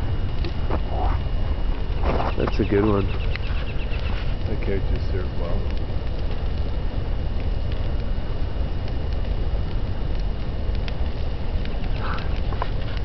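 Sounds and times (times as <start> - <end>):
fire crackling and popping: 0.0 - 13.0
large fire rushing: 0.0 - 13.0.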